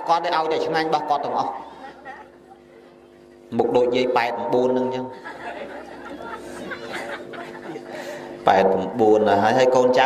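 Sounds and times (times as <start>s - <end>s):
overlapping voices chattering: 1.6s - 3.5s, 5.2s - 8.5s.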